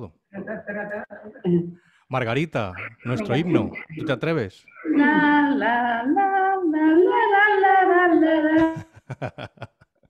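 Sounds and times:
woman singing unaccompanied: 4.8 - 8.8.

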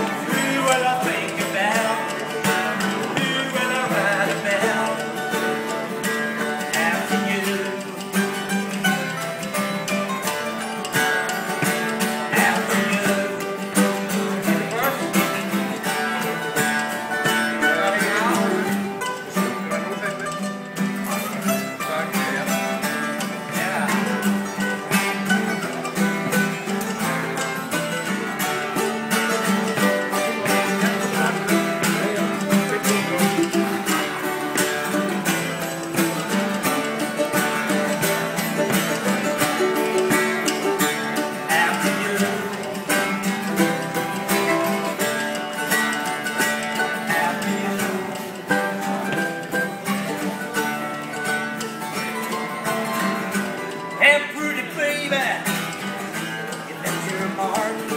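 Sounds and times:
acoustic guitar: 0.0 - 57.9
mandolin: 0.0 - 57.9.

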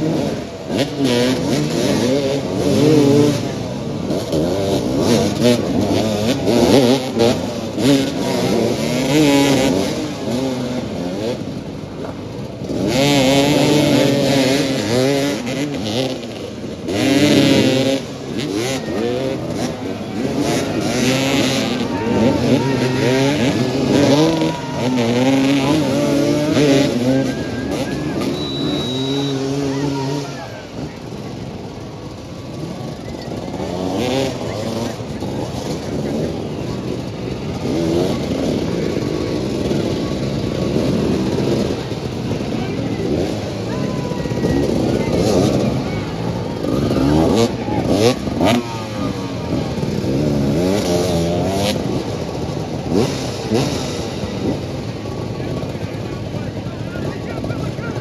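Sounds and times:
motorcycles revving: 0.0 - 58.0.

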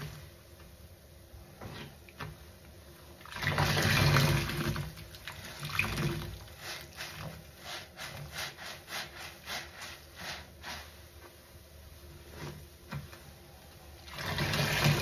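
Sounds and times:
water gushing: 3.2 - 7.4, 14.0 - 15.0.

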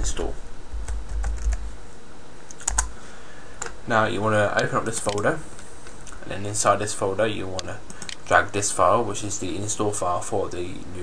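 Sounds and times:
faint steady hiss: 0.0 - 11.0
computer keyboard keystrokes: 0.8 - 1.6, 2.5 - 2.9, 4.6 - 5.3, 7.6 - 8.3.

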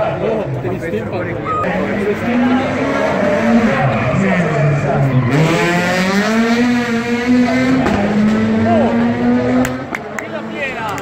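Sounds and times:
rally car engine revving hard: 1.6 - 10.7.

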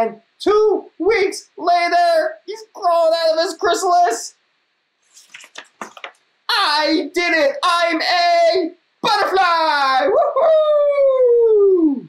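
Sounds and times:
man cheering woo-hoo: 9.0 - 12.0.

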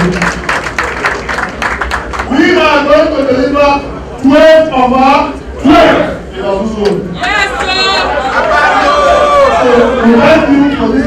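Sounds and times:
man speaking through loudspeakers: 2.3 - 7.2, 9.5 - 11.0.

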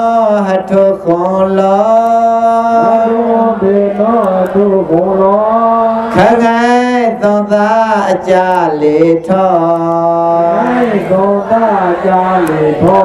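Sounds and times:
man chanting: 0.0 - 13.0.

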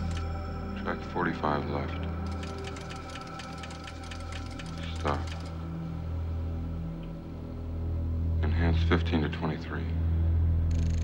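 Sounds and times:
fast electronic clicks: 2.3 - 5.6, 10.7 - 11.0.

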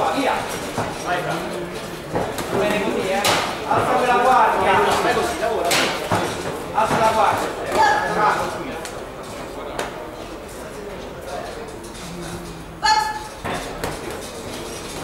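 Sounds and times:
voices shouting in echoing hall: 7.7 - 8.4, 12.8 - 13.4.

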